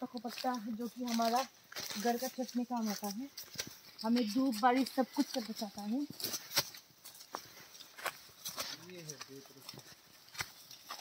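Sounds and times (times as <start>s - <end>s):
footsteps on dry leaves and twigs: 0.0s - 11.0s.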